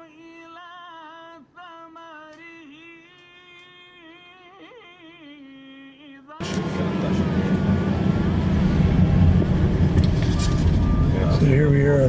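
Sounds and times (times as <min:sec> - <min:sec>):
vehicle driving rumble: 0:06.4 - 0:12.0.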